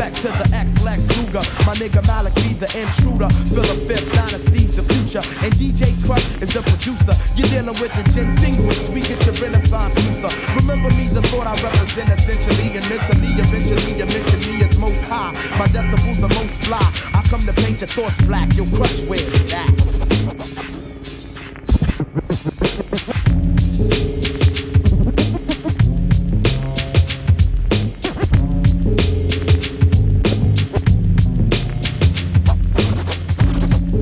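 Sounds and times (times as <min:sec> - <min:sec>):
rapping over a beat: 0:00.0 - 0:23.3
steady bassline: 0:00.0 - 0:34.0.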